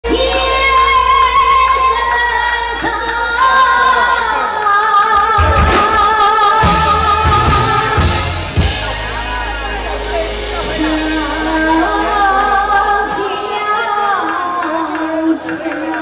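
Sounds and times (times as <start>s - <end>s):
woman singing: 0.0s - 8.4s, 10.6s - 16.0s
live band playing: 0.0s - 15.2s.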